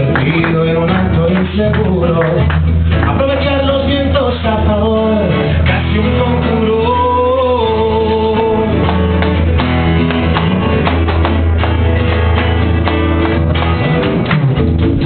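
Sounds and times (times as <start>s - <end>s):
acoustic guitar strumming: 0.0s - 15.0s.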